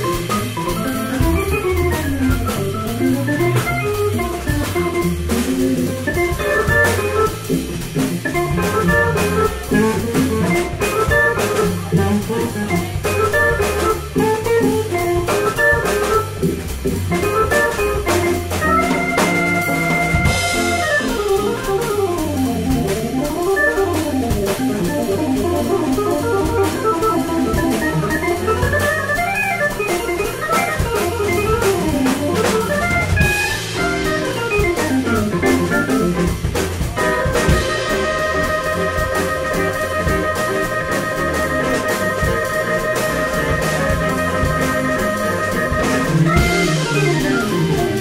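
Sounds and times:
drum kit keeping time: 0.0 - 48.0
jazz organ solo: 0.0 - 48.0.

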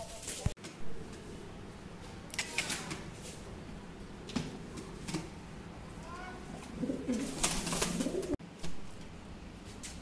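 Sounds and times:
pigeon cooing: 6.2 - 8.4.

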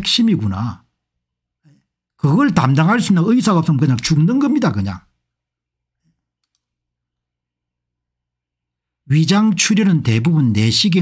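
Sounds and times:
computer mouse clicks: 6.0 - 6.8.

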